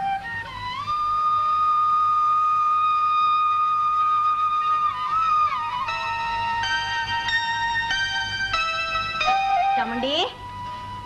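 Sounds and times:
held flute-like note: 0.0 - 11.0.

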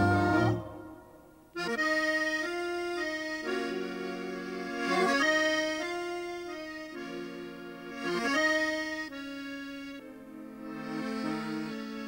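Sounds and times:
accordion playing slow chords: 0.0 - 12.0.

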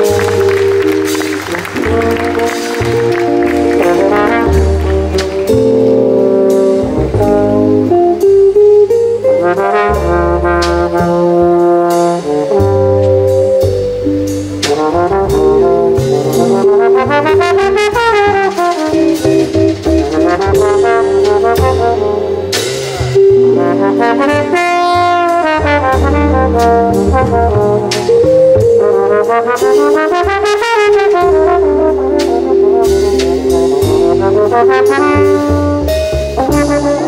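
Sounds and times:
double bass: 0.0 - 37.0
valve trombone jazz solo: 0.0 - 37.0
drums with cymbals: 3.6 - 37.0.

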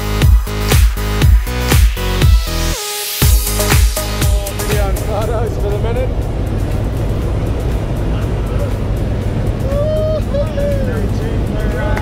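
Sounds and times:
background music: 0.0 - 12.0
plane engine drone: 3.3 - 12.0.

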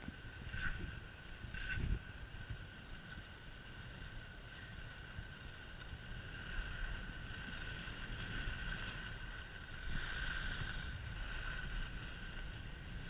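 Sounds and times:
wind buffeting microphone: 0.0 - 13.0
hiss of sliding on snow: 0.2 - 13.0.

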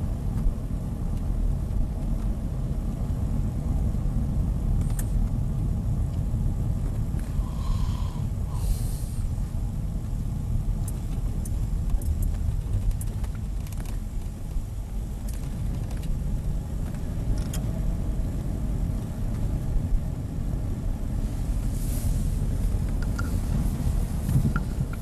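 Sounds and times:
engine and road rumble: 0.0 - 25.0.

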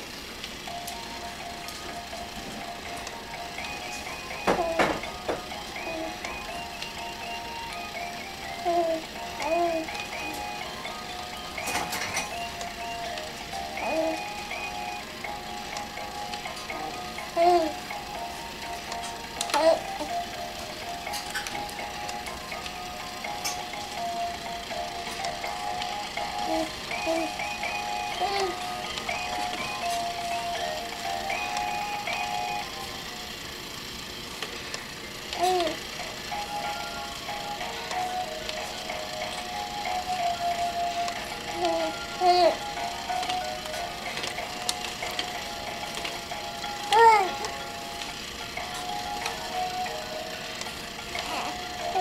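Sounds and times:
electronic toy melody: 0.6 - 34.1, 34.9 - 52.0
simple electronic toy tune: 0.7 - 20.4.

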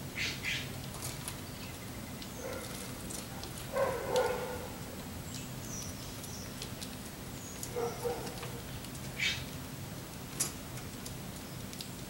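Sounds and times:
songbirds chirping: 0.1 - 9.7.

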